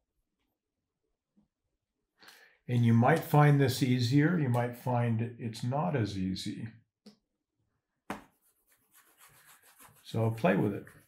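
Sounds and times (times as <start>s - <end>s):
stylus scrubbing on drawing tablet: 8.2s - 11.0s.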